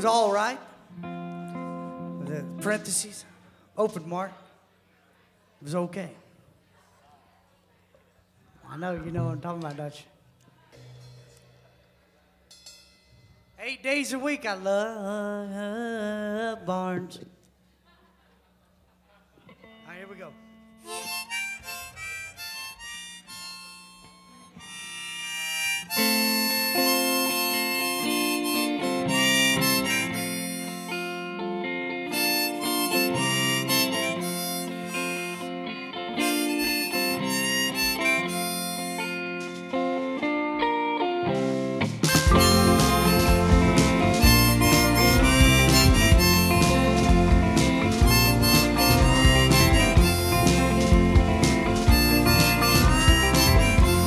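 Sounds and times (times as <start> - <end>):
acoustic guitar picking: 20.5 - 54.0
harmonica: 20.7 - 40.8, 41.9 - 54.0.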